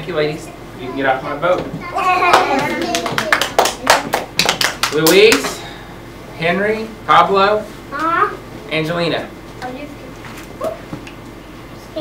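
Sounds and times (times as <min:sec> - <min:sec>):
children's voices: 0:00.8 - 0:04.2
children clapping: 0:02.2 - 0:05.5.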